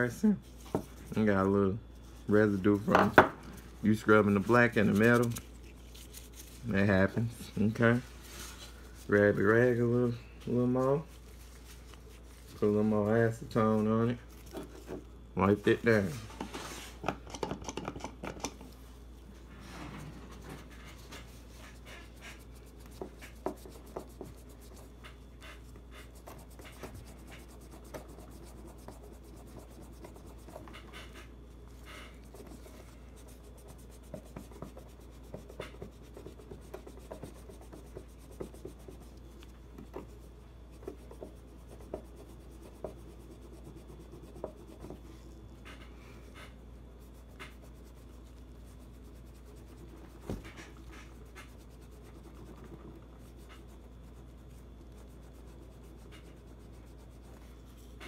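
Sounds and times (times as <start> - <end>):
rag rubbing on steel: 19.6 - 39.2.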